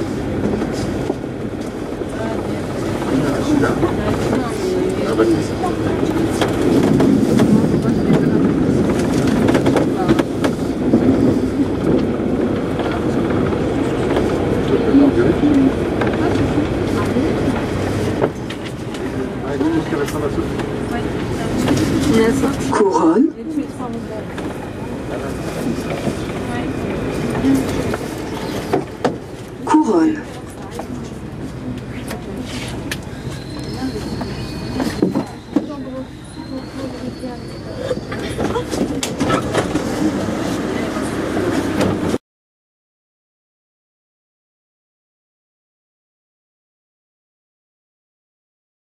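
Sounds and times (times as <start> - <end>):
train wheels rolling in tunnel: 0.0 - 22.7, 23.4 - 42.2.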